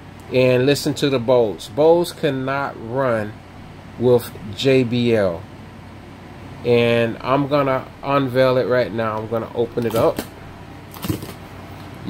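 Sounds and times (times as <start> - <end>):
cardboard rustling and scraping: 10.9 - 11.4.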